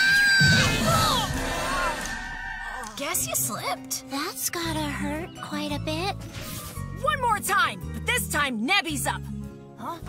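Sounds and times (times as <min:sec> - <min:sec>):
cartoon characters screaming: 0:00.0 - 0:03.0
background music: 0:00.0 - 0:10.0.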